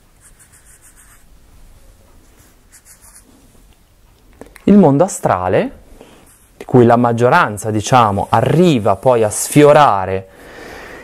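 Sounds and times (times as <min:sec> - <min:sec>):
writing strokes on a board: 0:00.0 - 0:01.3, 0:02.3 - 0:03.3
low room hum: 0:00.0 - 0:11.0.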